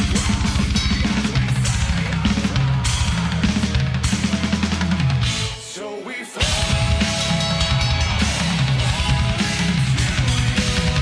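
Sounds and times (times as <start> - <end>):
heavy metal band music: 0.0 - 11.0
cymbals: 6.4 - 11.0.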